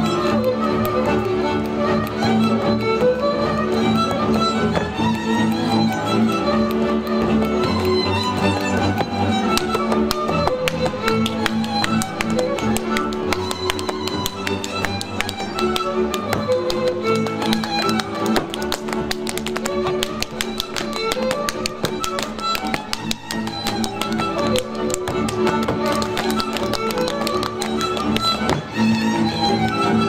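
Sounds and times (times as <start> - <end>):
string band dance music: 0.0 - 30.0
hands slapping boots: 6.4 - 28.7
boots stamping on stage: 7.0 - 28.7.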